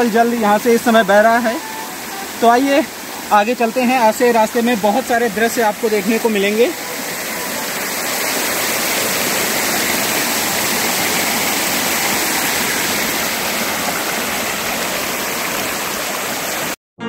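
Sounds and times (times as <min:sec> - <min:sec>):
stream rushing over rocks: 0:00.0 - 0:16.8.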